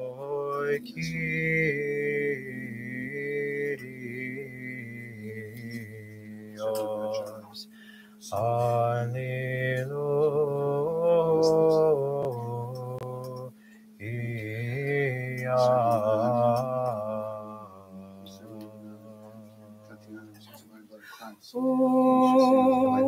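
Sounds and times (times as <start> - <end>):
voices chanting slow melody: 0.0 - 23.0.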